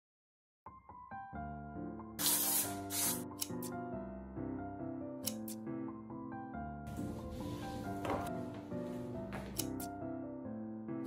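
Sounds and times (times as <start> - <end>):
soft piano music: 0.7 - 11.0
aerosol spray can hissing: 2.2 - 3.4.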